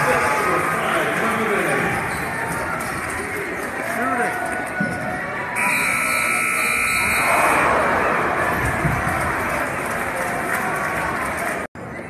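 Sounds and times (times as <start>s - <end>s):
loud crowd noise: 0.0s - 12.0s
scoreboard horn buzzing: 5.6s - 7.4s.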